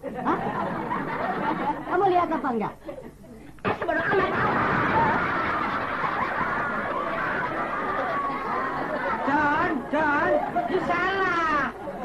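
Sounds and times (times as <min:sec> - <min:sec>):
people laughing: 0:00.0 - 0:02.0, 0:02.8 - 0:12.0.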